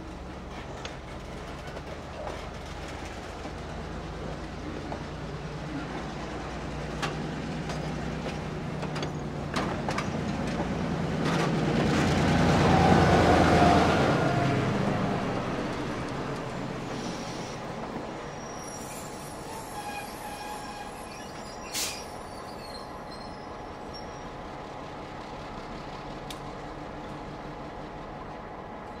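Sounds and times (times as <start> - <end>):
diesel locomotive drone: 0.0 - 29.0
freight cars clanking: 0.4 - 13.0.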